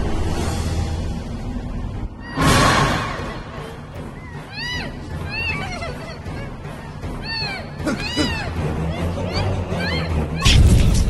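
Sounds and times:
low background score: 0.0s - 11.0s
woman's muffled cries: 4.6s - 10.2s.

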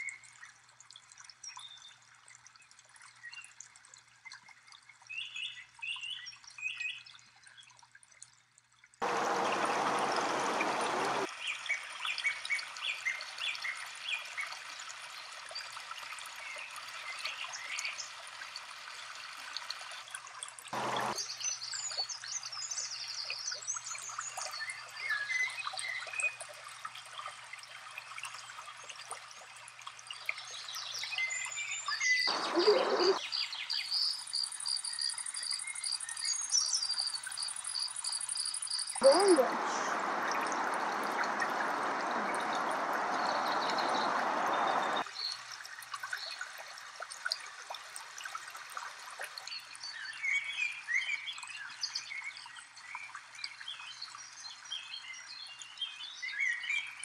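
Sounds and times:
stream trickling over rocks: 0.0s - 57.0s
songbirds chirping: 9.0s - 11.6s, 20.8s - 22.1s, 32.0s - 45.3s
rushes of noise: 39.0s - 45.0s.

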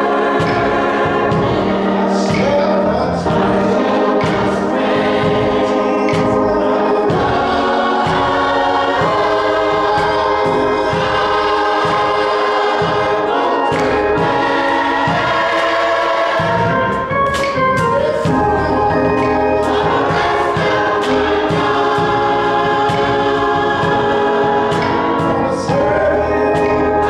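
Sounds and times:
gospel choir singing: 0.0s - 27.0s
keyboard accompaniment: 0.0s - 27.0s
sharp rhythmic beats: 0.0s - 27.0s.

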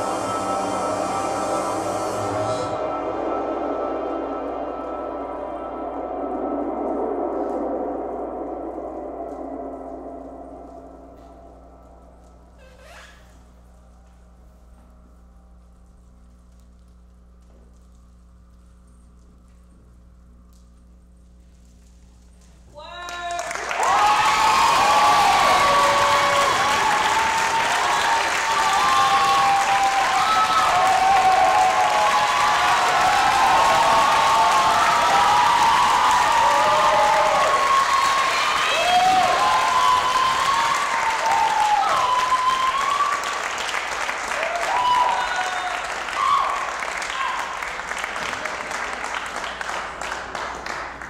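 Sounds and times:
audience applauding: 22.9s - 51.0s.

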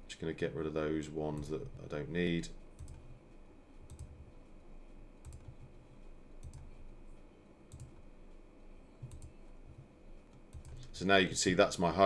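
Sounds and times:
computer mouse clicks: 2.8s - 3.1s, 3.9s - 4.2s, 5.2s - 5.7s, 6.4s - 6.8s, 7.7s - 8.0s, 9.0s - 10.9s.

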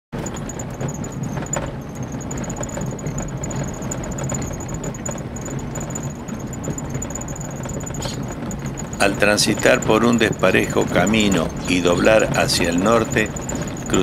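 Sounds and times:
vehicle engine rumble: 0.1s - 14.0s
high pulsing chirp: 0.2s - 14.0s.

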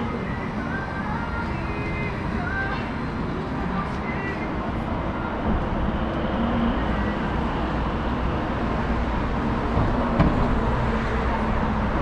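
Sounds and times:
faint voices of passers-by: 0.0s - 9.9s
road traffic hum: 0.0s - 12.0s.

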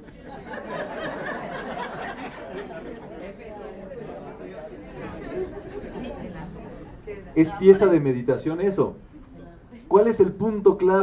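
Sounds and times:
quiet indistinct chatter: 0.0s - 11.0s.

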